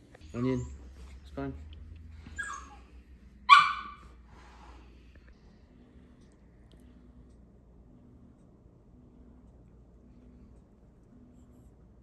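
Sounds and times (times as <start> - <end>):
small dog barking: 3.5 - 4.1.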